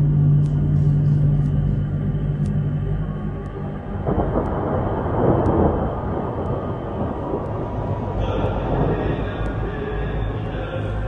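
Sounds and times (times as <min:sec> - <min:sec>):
rumbling cinematic roar: 0:00.0 - 0:11.0.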